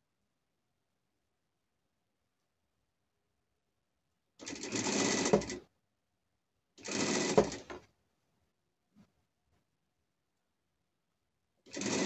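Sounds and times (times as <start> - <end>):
sewing machine stitching: 4.4 - 5.7, 6.8 - 7.9, 11.7 - 12.0.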